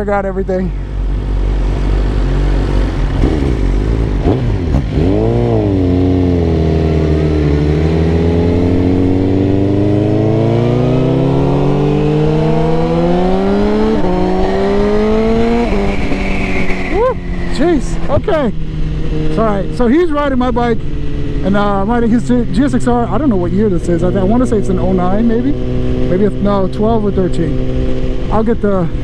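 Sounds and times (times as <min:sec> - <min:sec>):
motorcycle engine accelerating: 0:00.9 - 0:29.0.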